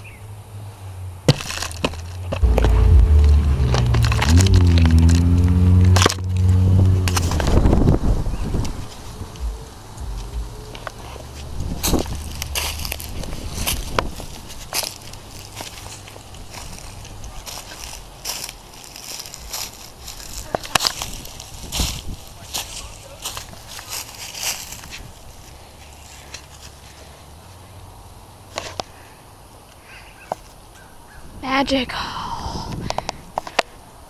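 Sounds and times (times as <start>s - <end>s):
footsteps crunching dry leaves: 1.3s - 7.4s, 8.6s - 27.5s.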